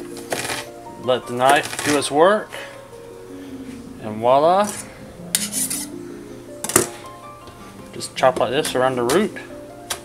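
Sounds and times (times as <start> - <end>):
background music of held notes: 0.0 - 10.0.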